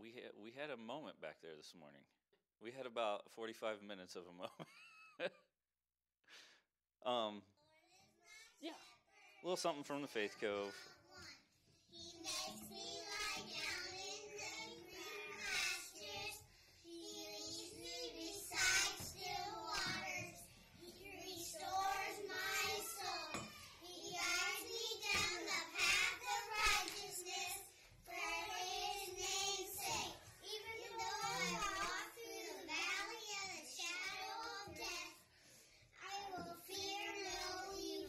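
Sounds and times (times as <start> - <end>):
children singing together: 10.4 - 35.3, 36.0 - 38.0.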